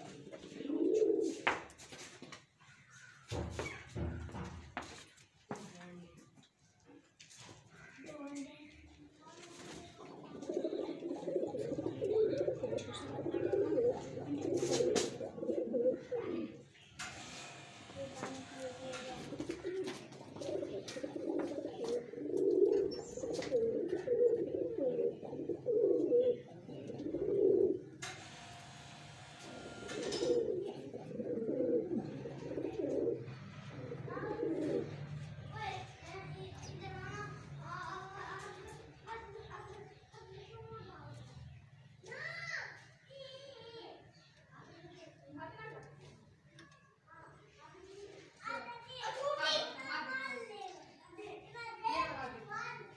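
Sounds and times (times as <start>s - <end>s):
pigeons cooing: 0.0s - 1.6s, 10.0s - 17.3s, 18.5s - 35.7s.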